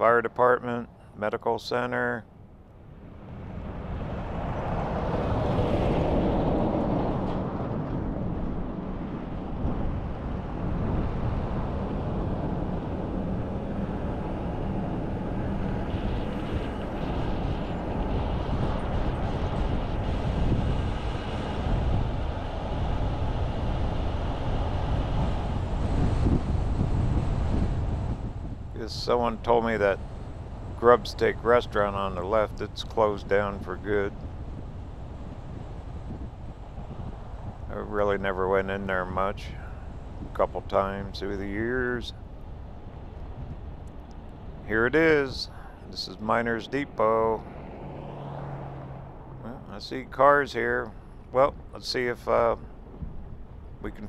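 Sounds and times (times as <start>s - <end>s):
highway road noise: 0.0s - 54.0s
wind rushing over microphone: 2.1s - 54.0s.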